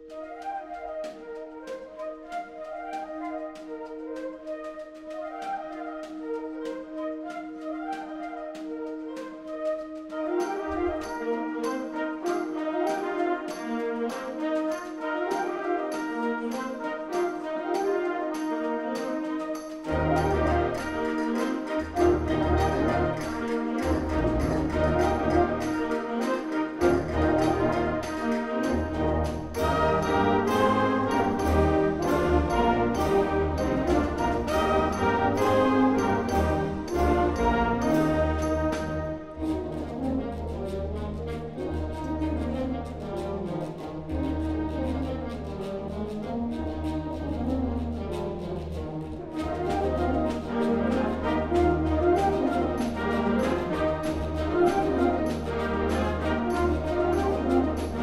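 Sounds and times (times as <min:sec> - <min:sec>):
percussion beat: 0:00.0 - 0:58.0.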